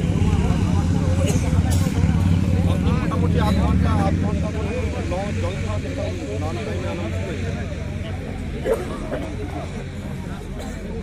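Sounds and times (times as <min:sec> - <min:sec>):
loud steady low rumble: 0:00.0 - 0:11.0
people talking at once: 0:00.0 - 0:11.0.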